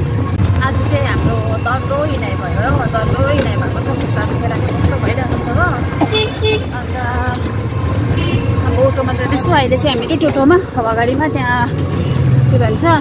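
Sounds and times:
road and motor rumble: 0.0s - 13.0s
vehicle horn tooting: 5.8s - 6.9s, 7.9s - 9.0s.

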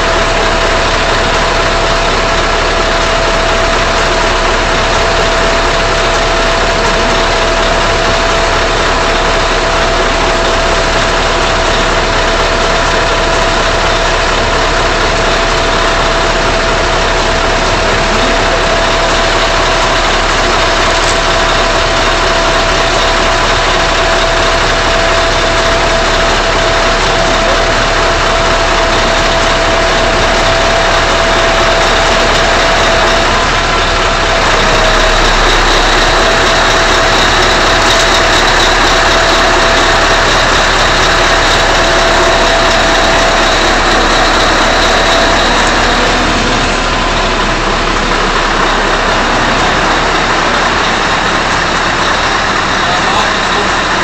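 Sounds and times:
crane motor droning: 0.0s - 54.0s.

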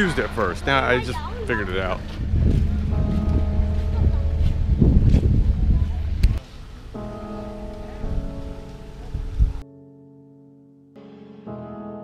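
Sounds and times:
low outdoor rumble: 0.0s - 9.6s
sustained keyboard music: 0.0s - 12.0s.

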